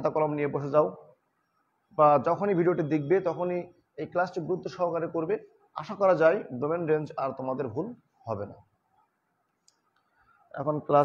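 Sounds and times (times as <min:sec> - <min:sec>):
man speaking: 0:02.0 - 0:08.6, 0:10.5 - 0:11.0.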